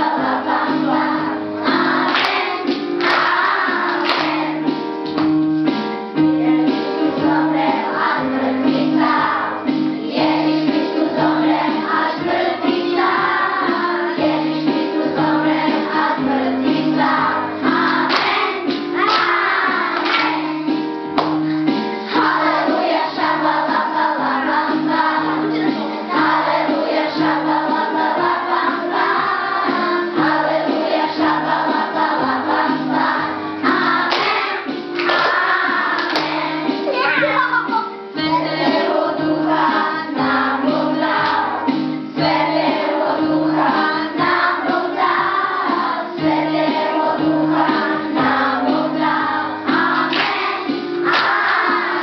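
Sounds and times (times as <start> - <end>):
children singing together: 0.0 - 5.0, 6.1 - 52.0.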